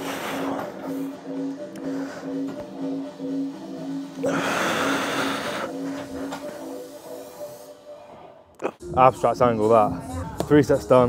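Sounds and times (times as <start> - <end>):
pulsing background music: 0.0 - 11.0.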